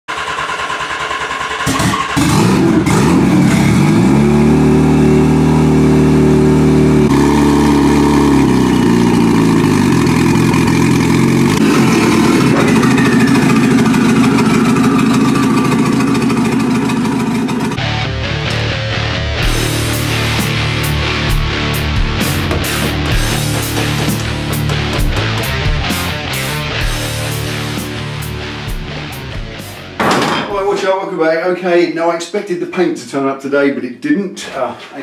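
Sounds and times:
motorcycle engine revving: 0.1 - 18.6, 19.4 - 29.4.

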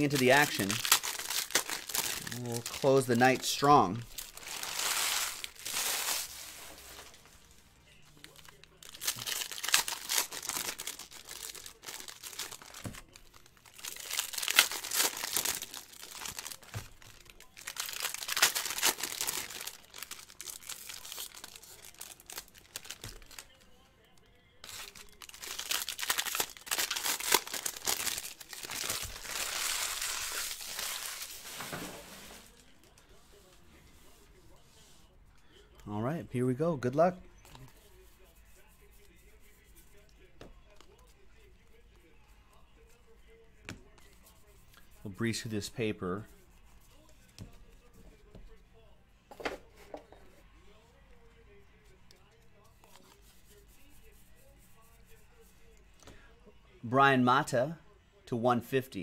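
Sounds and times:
foil wrappers crinkling and tearing: 0.0 - 7.5, 8.1 - 33.0.

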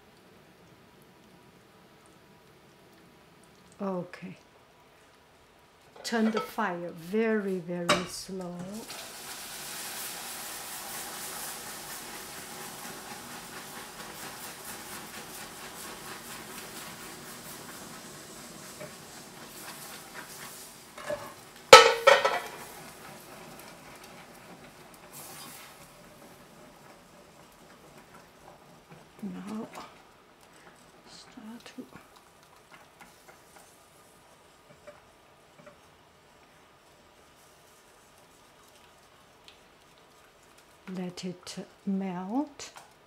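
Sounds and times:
caramel sizzling and bubbling: 0.0 - 43.0
clatter against pot: 6.0 - 6.6, 21.0 - 23.3
whisk stirring in pot: 8.8 - 40.9.

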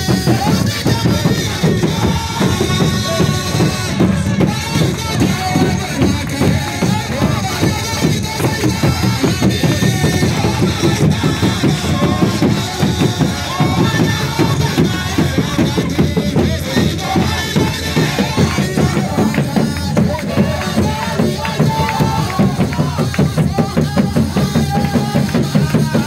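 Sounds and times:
congregation singing: 0.0 - 26.0
drums beaten with sticks: 0.0 - 26.0.

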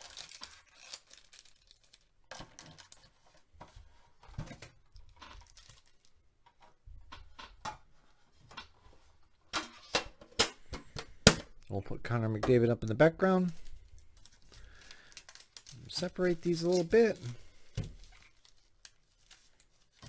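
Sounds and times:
foil packs crinkling: 0.0 - 3.5, 5.1 - 6.2, 13.2 - 20.0.

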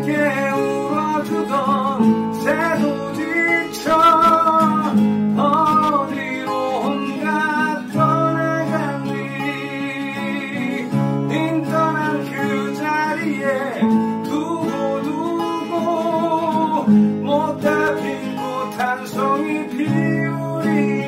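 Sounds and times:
acoustic guitar chords: 0.0 - 21.0
person singing with vibrato: 0.0 - 21.0.

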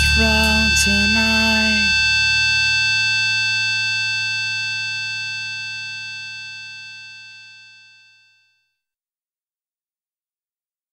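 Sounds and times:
metal guitar chord ringing: 0.0 - 3.0.

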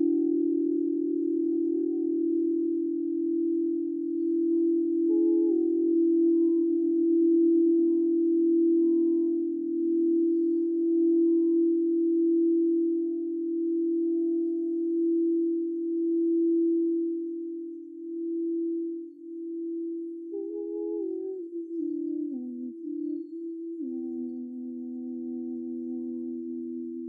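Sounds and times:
singing bowl steady tone: 0.0 - 27.0.

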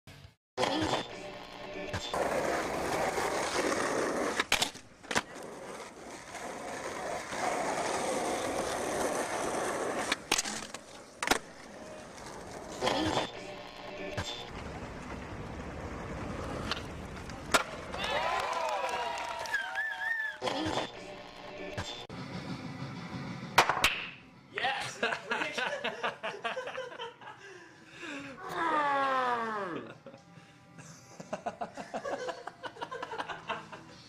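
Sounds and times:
skateboard wheels rolling on concrete: 1.3 - 20.4
skateboard clacking: 14.3 - 18.2.

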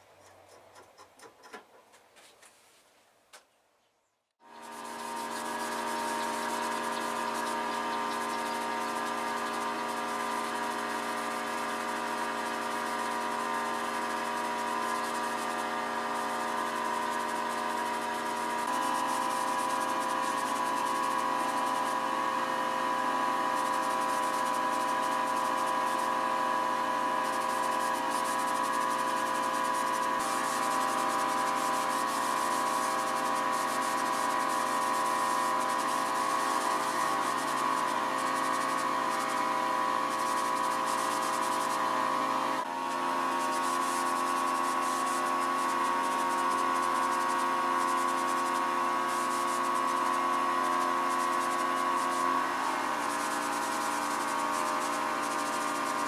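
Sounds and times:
machine hum: 4.4 - 56.0
paint spray gun hissing: 4.4 - 56.0.

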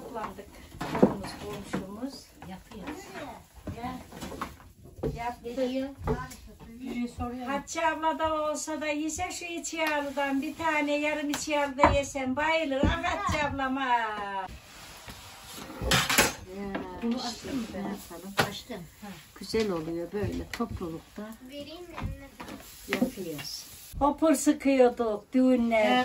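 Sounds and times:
metal kitchenware clinking: 15.8 - 16.5.

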